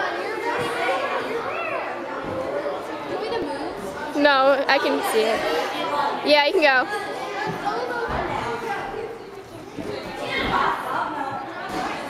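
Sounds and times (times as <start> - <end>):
indistinct background chatter: 0.0 - 12.0.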